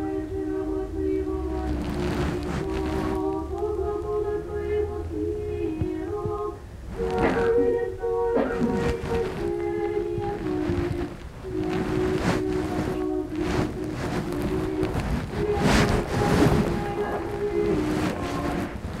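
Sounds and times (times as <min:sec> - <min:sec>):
person singing slow tune: 0:00.0 - 0:19.0.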